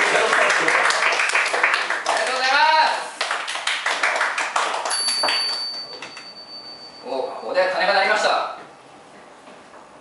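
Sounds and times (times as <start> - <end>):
audience applause: 0.0 - 5.0
thin high steady tone: 5.0 - 8.0.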